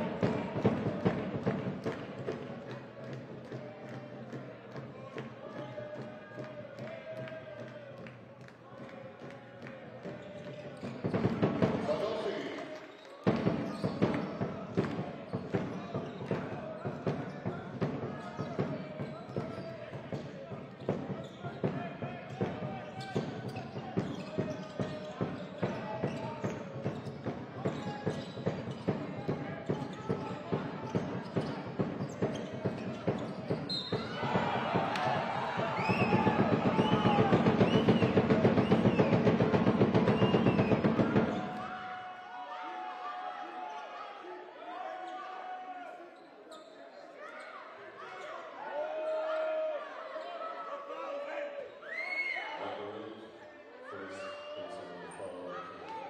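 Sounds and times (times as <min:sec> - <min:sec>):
sneaker squeaks: 0:12.9 - 0:14.4, 0:22.6 - 0:35.1, 0:46.0 - 0:48.5
people shouting: 0:33.9 - 0:38.7.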